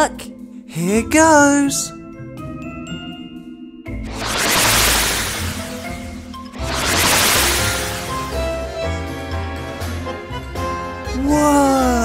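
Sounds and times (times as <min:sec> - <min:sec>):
background music: 0:00.0 - 0:12.0
magical whoosh transition: 0:04.0 - 0:08.6.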